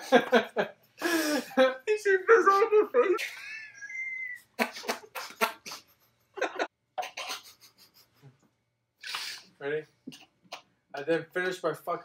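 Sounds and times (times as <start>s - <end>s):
men laughing in breathy gasps: 0.0s - 1.7s
high-pitched squeal of laughter: 3.4s - 4.7s.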